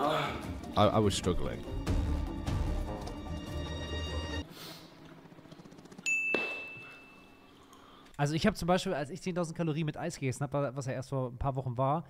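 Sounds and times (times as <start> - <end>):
bright ding: 6.0 - 7.5.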